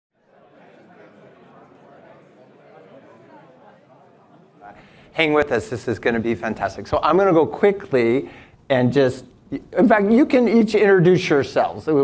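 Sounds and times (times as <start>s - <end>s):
chatter of many voices: 0.2s - 4.9s.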